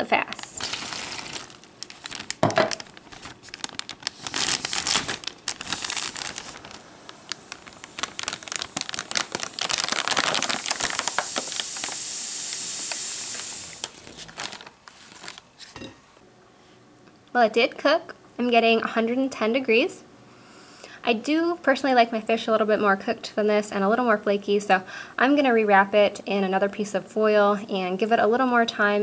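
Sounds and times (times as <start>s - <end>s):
plastic bag crinkling: 0.0s - 15.7s
steady high hiss: 2.8s - 14.9s.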